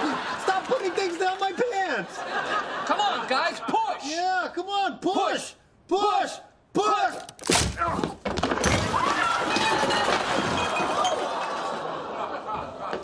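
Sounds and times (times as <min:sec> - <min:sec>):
studio audience laughter: 0:00.0 - 0:03.8, 0:10.6 - 0:13.0
dishes clattering and breaking: 0:08.4 - 0:11.6.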